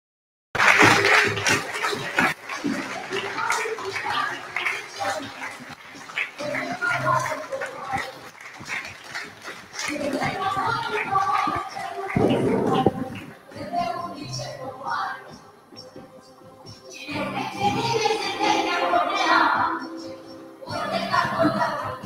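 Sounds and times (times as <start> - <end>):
voices talking over one another: 1.9 - 8.3, 9.8 - 22.0.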